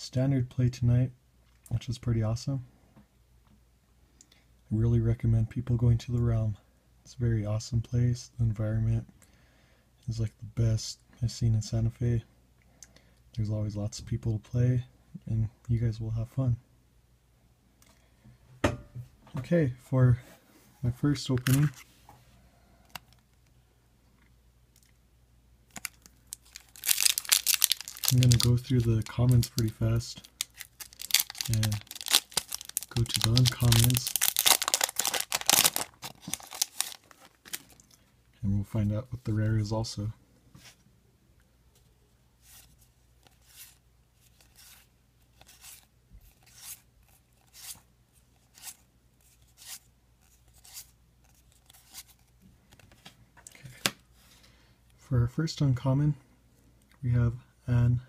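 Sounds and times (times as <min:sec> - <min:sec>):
foil wrapper tearing and crinkling: 0:25.7 - 0:37.8
cards sliding with papery swish: 0:42.4 - 0:47.8.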